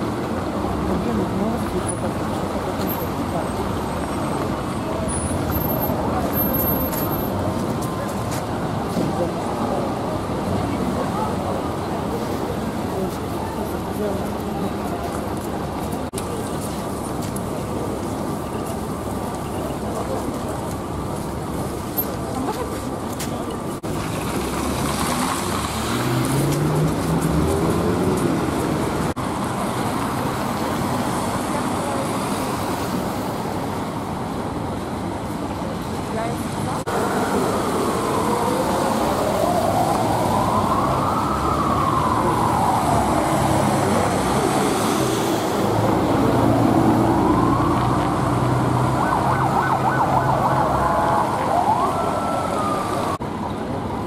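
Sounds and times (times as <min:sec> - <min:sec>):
crowd voices: 0:00.0 - 0:24.1, 0:24.9 - 0:54.0
steady traffic noise: 0:00.0 - 0:54.0
police siren wailing: 0:36.9 - 0:44.8, 0:45.8 - 0:53.2.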